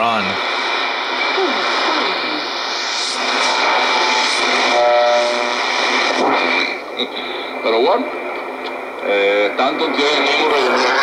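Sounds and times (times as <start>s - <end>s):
fragments of station audio: 0.0s - 11.0s
radio static and hiss: 0.0s - 11.0s
steady radio tones: 0.0s - 11.0s.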